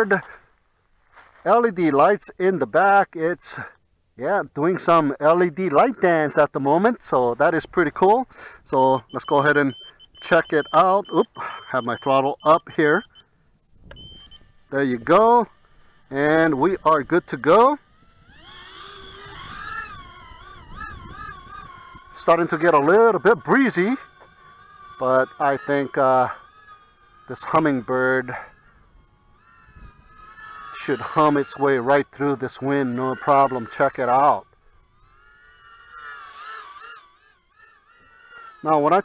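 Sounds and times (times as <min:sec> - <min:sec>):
quadcopter motors whining: 0:01.5 - 0:39.0.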